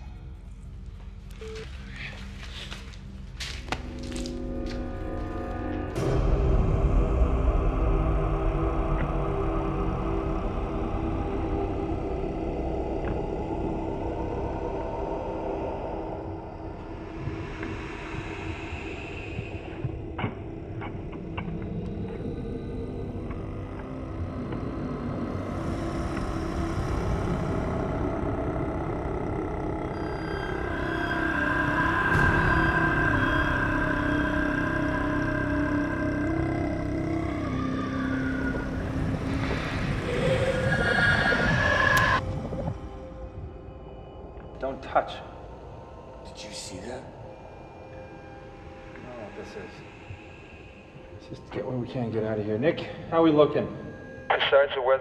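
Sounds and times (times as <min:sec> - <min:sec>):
ominous low drone: 0:00.0 - 0:54.4.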